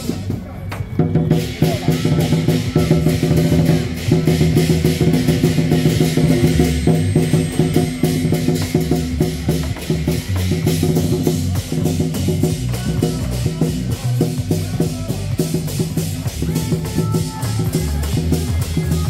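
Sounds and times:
crashing cymbals: 0.0 - 19.0
drums beating fast: 0.0 - 19.0
low ringing tones: 3.8 - 10.4.

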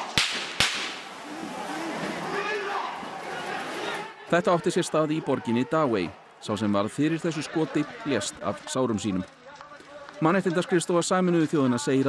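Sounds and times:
gunshots with echo: 0.0 - 1.1.

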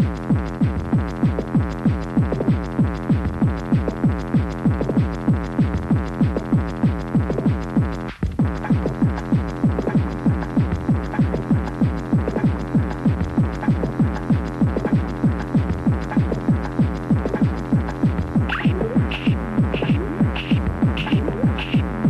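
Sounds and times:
distorted kick drum: 0.0 - 22.0
bass drone: 8.4 - 22.0.

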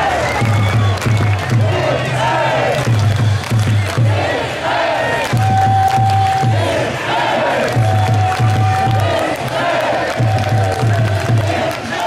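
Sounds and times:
low drum beat: 0.0 - 2.0, 2.7 - 4.4, 5.2 - 6.8, 7.7 - 9.2, 10.1 - 11.7
stadium crowd chanting and cheering: 0.0 - 12.0.

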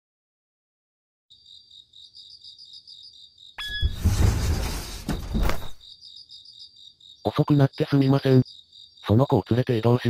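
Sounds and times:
cricket chirping: 1.3 - 10.0
rough rumble of sliding door: 3.6 - 5.8.

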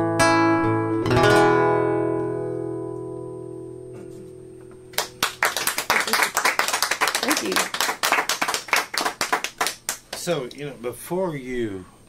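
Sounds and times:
audience clapping: 4.9 - 10.3.

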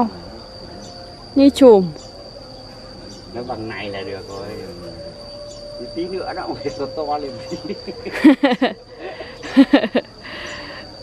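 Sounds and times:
insects chirring: 0.0 - 11.0
person laughing: 7.6 - 10.2.

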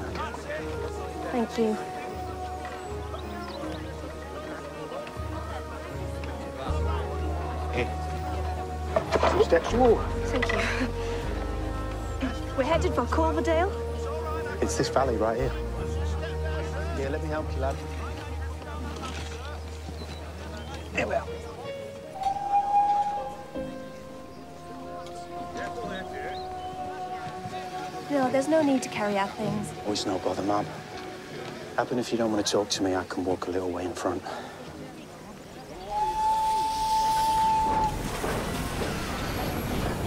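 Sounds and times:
background music: 0.0 - 40.0
steam locomotive whistle: 22.1 - 28.0, 35.8 - 40.0
steam hissing: 35.8 - 40.0.

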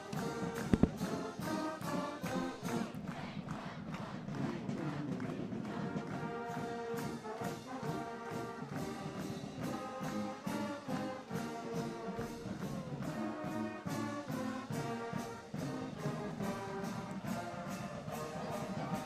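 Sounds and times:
brass band playing: 0.0 - 19.0.

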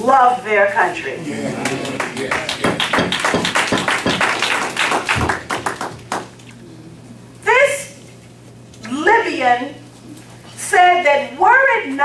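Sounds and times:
audience applause: 1.4 - 6.4.

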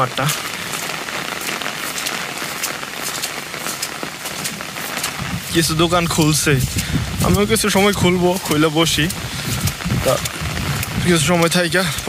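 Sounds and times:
rain falling on puddles: 0.0 - 12.0.

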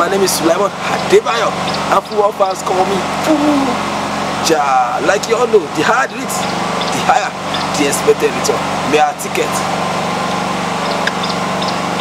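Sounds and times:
small engine droning: 0.0 - 12.0.

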